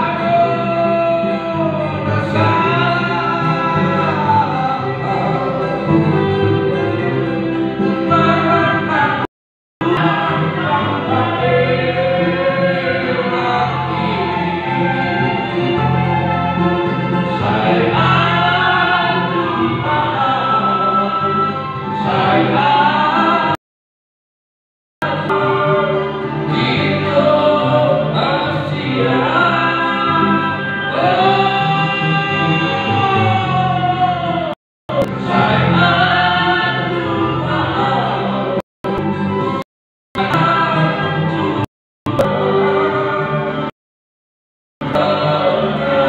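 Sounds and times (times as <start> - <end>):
acoustic guitar: 0.0 - 23.6, 25.0 - 39.6, 40.2 - 43.7, 44.8 - 46.0
people singing: 0.0 - 23.6, 25.0 - 38.6, 40.2 - 43.7, 44.8 - 46.0.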